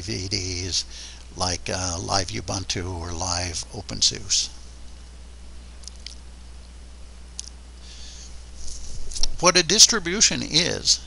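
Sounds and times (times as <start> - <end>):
faint background hiss: 0.0 - 11.0
steady low hum: 0.0 - 11.0.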